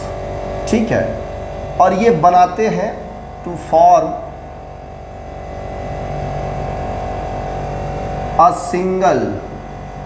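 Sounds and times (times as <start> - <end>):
low buzz: 0.0 - 10.0.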